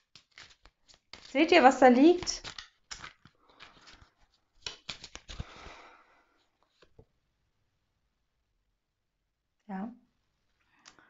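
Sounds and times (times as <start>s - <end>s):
card stock rustling: 0.0s - 5.8s.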